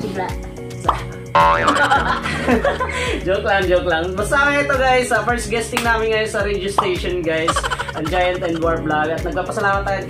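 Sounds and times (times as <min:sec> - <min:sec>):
background music with steady beat: 0:00.0 - 0:10.0
cartoon boing sound effect: 0:01.4 - 0:02.0.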